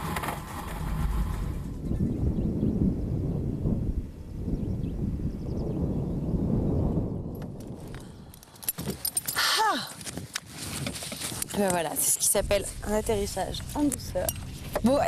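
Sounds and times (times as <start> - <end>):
landing gear rolling over grass: 0.0 - 2.5, 10.0 - 15.0.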